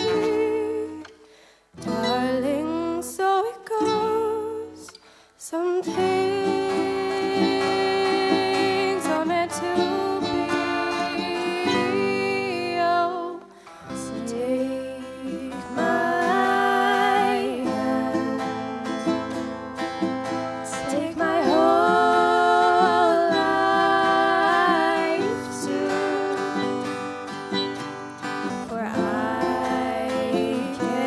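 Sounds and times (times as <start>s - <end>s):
woman singing: 0.0s - 19.6s, 20.4s - 27.8s, 28.4s - 31.0s
acoustic guitars: 0.0s - 31.0s
ukulele: 0.0s - 31.0s.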